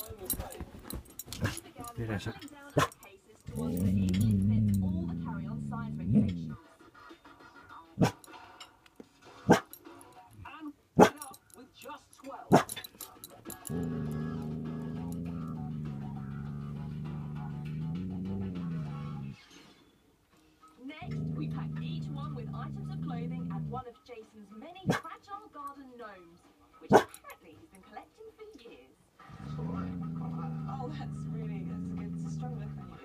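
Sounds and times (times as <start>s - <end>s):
dog growling: 0.0s - 6.6s, 12.5s - 19.4s, 21.0s - 23.9s, 29.2s - 33.0s.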